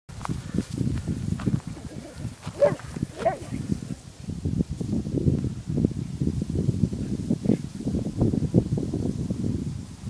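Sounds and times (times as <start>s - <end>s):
footsteps through dry grass: 0.1s - 5.0s.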